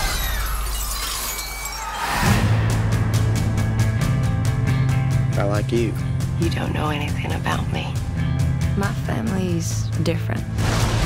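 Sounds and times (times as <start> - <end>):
glass shards tinkling down: 0.0 - 2.0.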